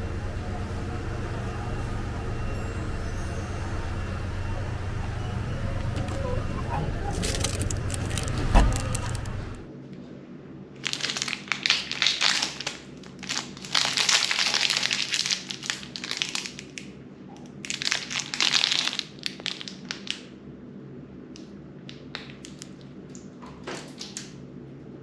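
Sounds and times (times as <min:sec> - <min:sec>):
plastic wrapper crinkling: 0:07.1 - 0:09.6, 0:10.8 - 0:16.8, 0:17.6 - 0:20.2.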